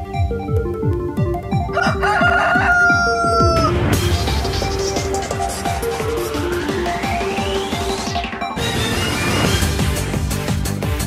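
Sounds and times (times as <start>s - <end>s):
electronic music with kick drum: 0.0s - 11.0s
rooster crowing: 1.7s - 3.9s.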